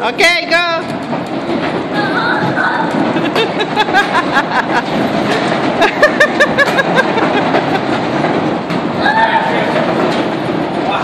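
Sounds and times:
people running inside wheel: 0.0 - 11.0
wooden wheel rumbling and clattering: 0.0 - 11.0
voices calling out: 1.7 - 4.2, 8.9 - 10.2.

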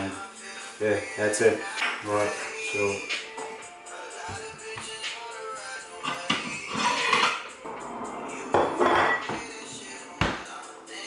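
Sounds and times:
ceramic plates clattering: 6.0 - 9.5.

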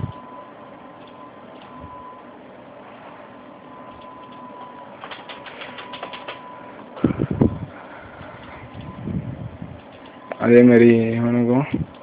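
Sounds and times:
thin high hum: 0.0 - 12.0
computer keyboard clicks: 5.0 - 6.4.

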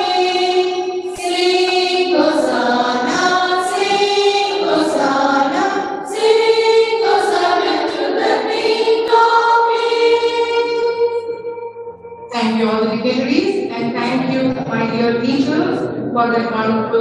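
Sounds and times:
choir of women singing: 0.0 - 11.4.

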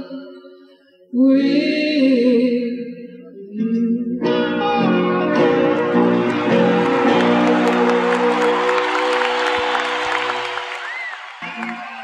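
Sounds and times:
audience applauding and cheering: 5.4 - 12.0
rock band held final chord: 5.4 - 12.0.

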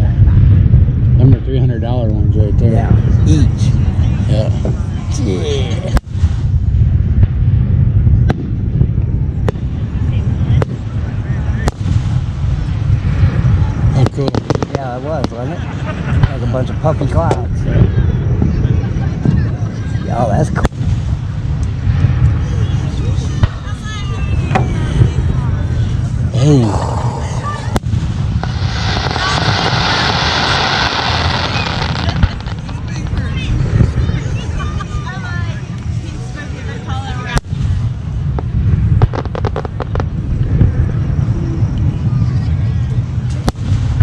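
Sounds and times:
fireworks booming and crackling: 0.0 - 44.0
steady low rumble: 0.0 - 44.0.

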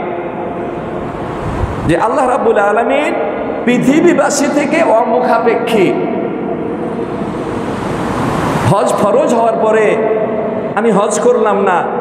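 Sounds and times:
steady rushing noise: 0.0 - 2.4, 6.1 - 9.2.

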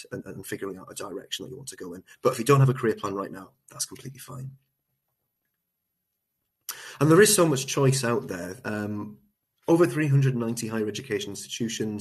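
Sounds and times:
man speaking: 0.0 - 4.7, 6.7 - 12.0.

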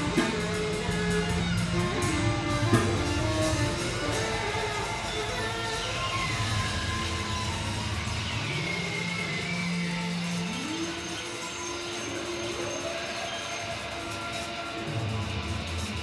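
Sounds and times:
high whistling slides: 0.0 - 15.1.

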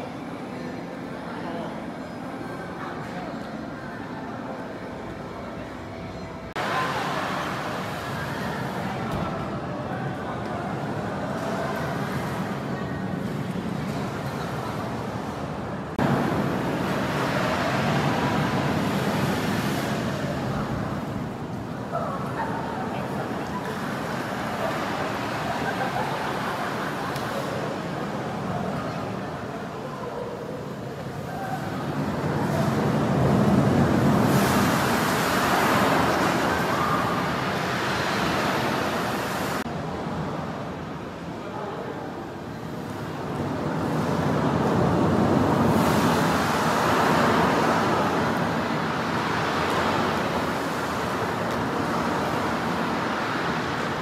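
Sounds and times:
recorded ocean surf over loudspeakers: 0.0 - 54.0.

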